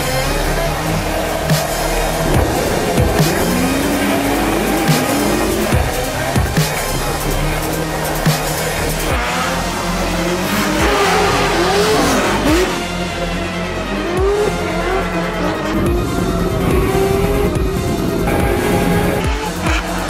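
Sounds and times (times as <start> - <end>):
background music with beat: 0.0 - 20.0
car engines revving: 0.0 - 20.0.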